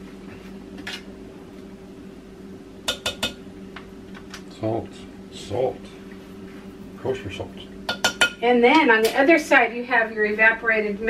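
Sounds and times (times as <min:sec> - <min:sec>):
steady low hum: 0:00.0 - 0:11.0
kitchenware clinking: 0:02.9 - 0:03.4, 0:07.9 - 0:08.4.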